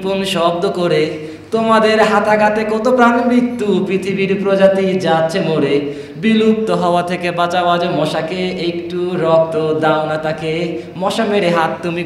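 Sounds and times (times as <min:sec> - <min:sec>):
man rapping in sing-song voice: 0:00.0 - 0:12.0.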